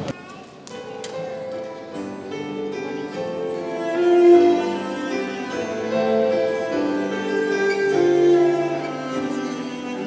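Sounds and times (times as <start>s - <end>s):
quiet instrumental music: 0.6s - 10.0s.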